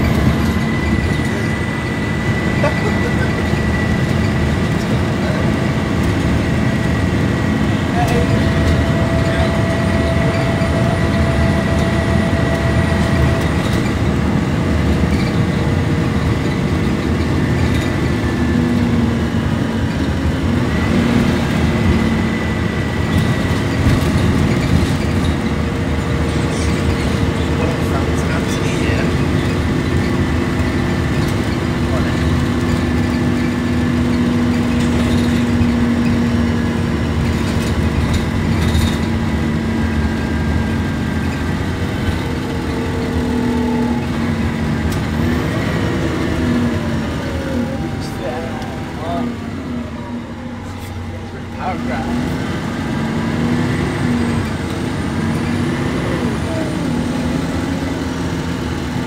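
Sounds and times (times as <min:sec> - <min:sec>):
bus engine drone: 0:00.0 - 0:59.0
road rumble: 0:00.0 - 0:59.0.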